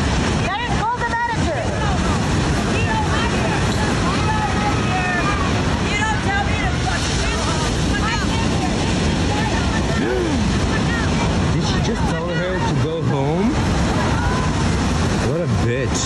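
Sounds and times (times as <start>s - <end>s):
surf breaking on beach: 0.0s - 16.0s
wind buffeting microphone: 0.0s - 16.0s.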